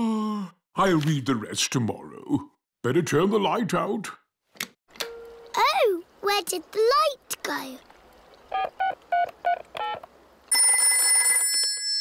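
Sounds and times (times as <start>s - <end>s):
rotary telephone bell ringing: 10.5s - 12.0s.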